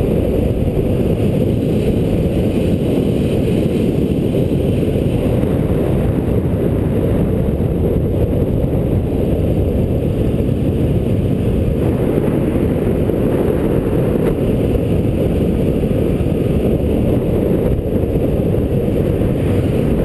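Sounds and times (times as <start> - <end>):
wind rushing over microphone: 0.0 - 20.0.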